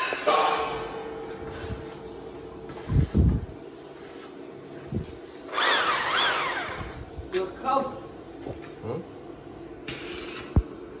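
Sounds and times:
hammer drill drilling into wall: 5.5s - 7.0s.

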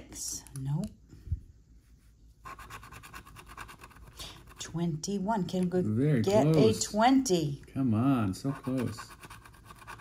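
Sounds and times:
scratcher scraping scratch-off ticket: 8.4s - 10.0s.

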